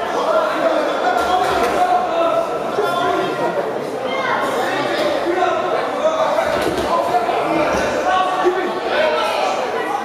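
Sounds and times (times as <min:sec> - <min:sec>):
spectators shouting and talking: 0:00.0 - 0:10.0.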